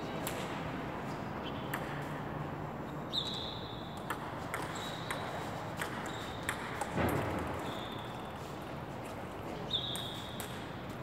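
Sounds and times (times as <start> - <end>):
ping-pong ball hitting paddles and table: 0.1 - 0.8, 1.4 - 2.5, 3.1 - 11.0.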